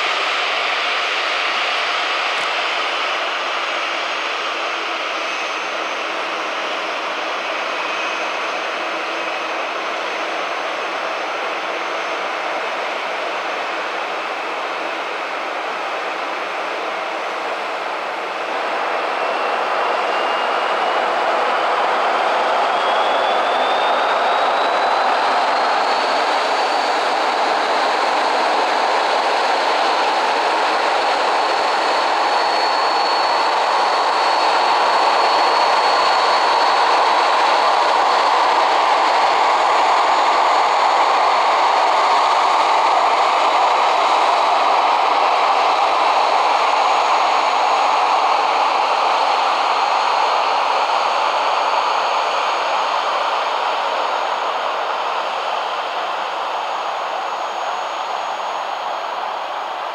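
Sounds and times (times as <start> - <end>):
jet engine whine: 0.0 - 59.9
jet engine rush: 13.2 - 59.9.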